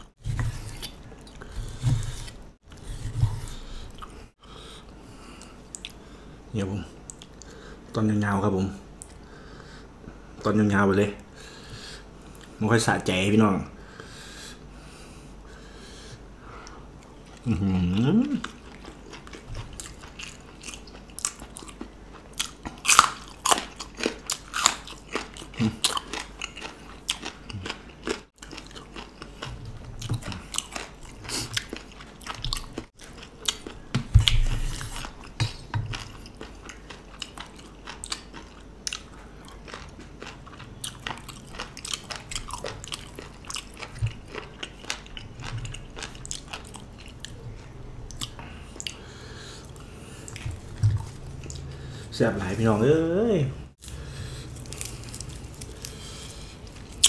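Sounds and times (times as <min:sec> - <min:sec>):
crunching raw vegetables: 0:53.8 - 0:57.0.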